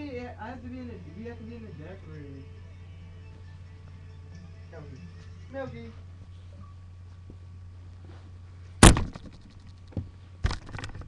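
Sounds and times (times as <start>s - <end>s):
steady low hum: 0.0s - 11.0s
camera bumped thump: 8.8s - 11.0s.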